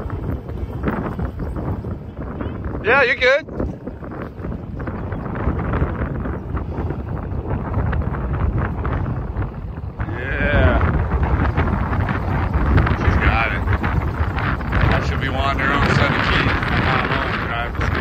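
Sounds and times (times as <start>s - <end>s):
wind on microphone: 0.0s - 18.0s.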